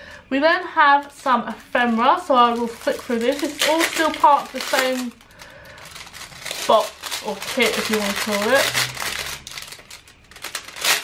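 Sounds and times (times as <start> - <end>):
plastic bag crinkling: 1.0 - 11.0.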